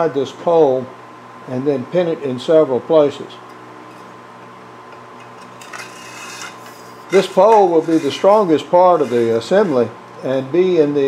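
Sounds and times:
steady low hum: 0.0 - 11.0
metal pole scraping in hands: 5.2 - 9.9.

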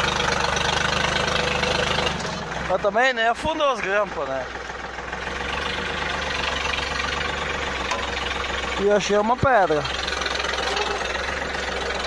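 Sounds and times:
tractor diesel engine chugging: 0.0 - 12.0.

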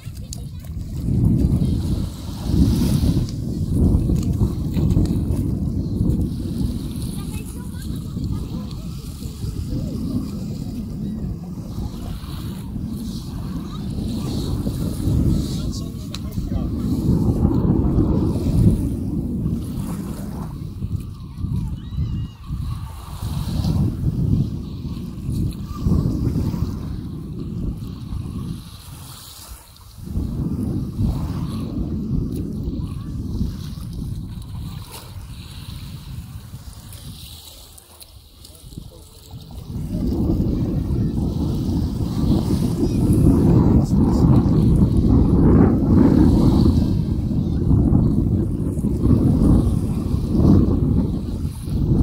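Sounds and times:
people talking: 0.0 - 6.2, 6.8 - 19.0, 20.3 - 23.9, 25.4 - 27.7, 31.0 - 34.6, 37.5 - 50.5
small waves washing on sand: 0.0 - 52.0
wind buffeting microphone: 0.0 - 52.0.

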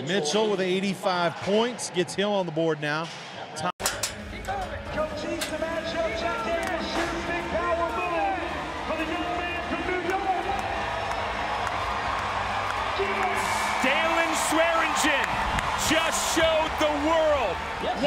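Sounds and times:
crowd noise: 0.0 - 18.0
music: 3.9 - 18.0.

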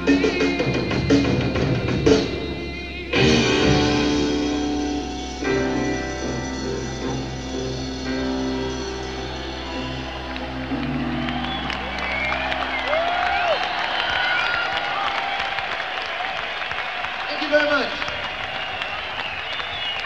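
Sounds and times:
rock band chord: 0.0 - 15.0
crowd cheering and applauding: 3.2 - 20.0.

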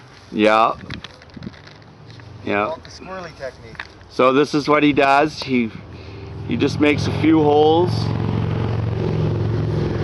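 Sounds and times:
engine humming: 0.9 - 10.0.

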